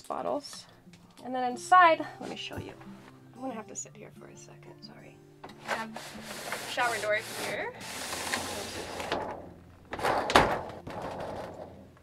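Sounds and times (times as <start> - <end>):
shower door sliding on track: 5.6 - 11.8.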